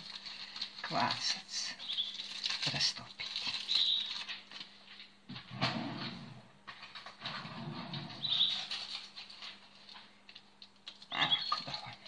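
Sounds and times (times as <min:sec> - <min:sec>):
foil wrapper crinkling: 0:00.0 - 0:05.1, 0:08.2 - 0:12.0.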